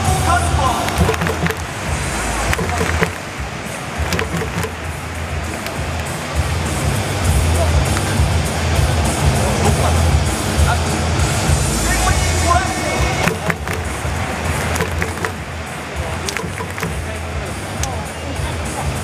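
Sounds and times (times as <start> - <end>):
bass-heavy music over loudspeakers: 0.0 - 19.0
murmur of voices: 0.0 - 19.0.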